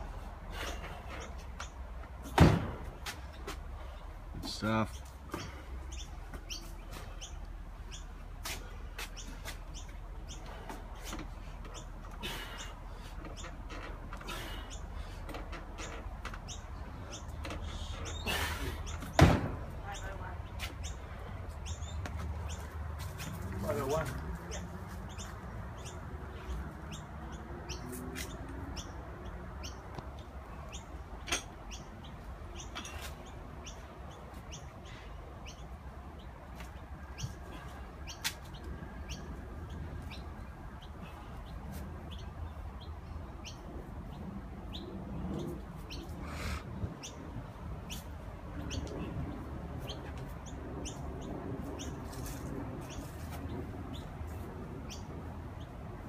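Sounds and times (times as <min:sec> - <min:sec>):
small birds chirping: 0:00.0 - 0:02.2, 0:03.1 - 0:56.0.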